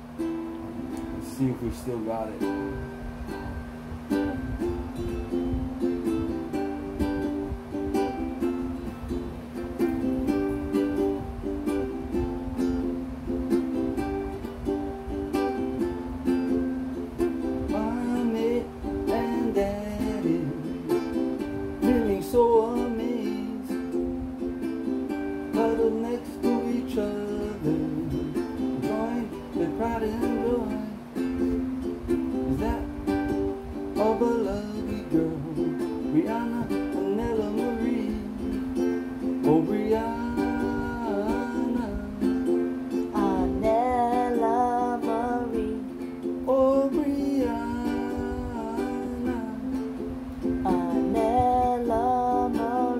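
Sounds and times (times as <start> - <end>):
ukulele strumming: 0.0 - 52.9.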